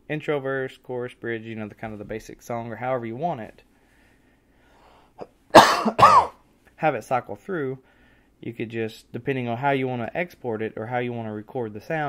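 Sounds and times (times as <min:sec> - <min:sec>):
man coughing: 0:05.6 - 0:06.4.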